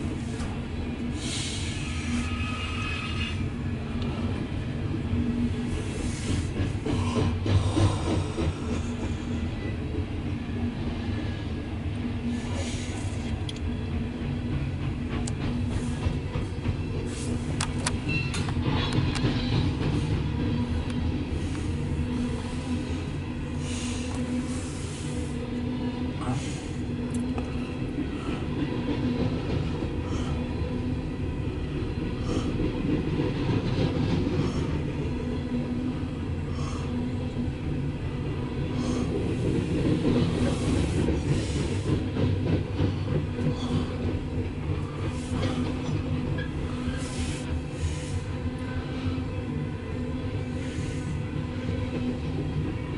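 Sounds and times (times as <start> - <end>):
train wheels rumbling on rails: 0.0 - 52.9.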